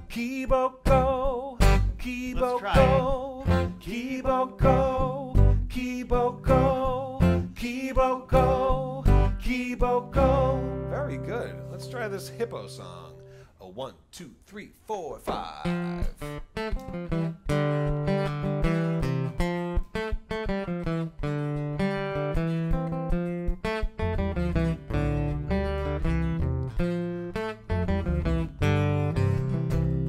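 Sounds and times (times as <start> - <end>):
acoustic guitar strumming: 0.0 - 13.5, 15.2 - 30.0
double bass plucked notes: 0.8 - 13.4, 15.3 - 19.9, 20.6 - 30.0.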